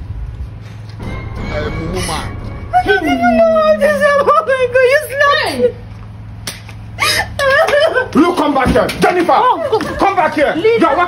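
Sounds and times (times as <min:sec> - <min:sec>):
woman crying out: 0:02.9 - 0:04.4
sharp slap: 0:06.4 - 0:06.8.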